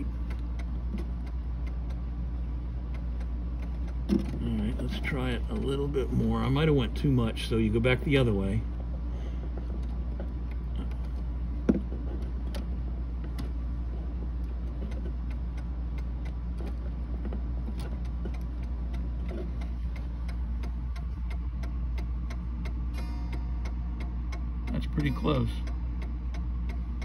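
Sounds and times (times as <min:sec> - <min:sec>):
clock ticking: 0:00.0 - 0:02.1, 0:02.8 - 0:06.9, 0:14.4 - 0:16.8, 0:17.7 - 0:27.0
low hum: 0:00.0 - 0:27.0.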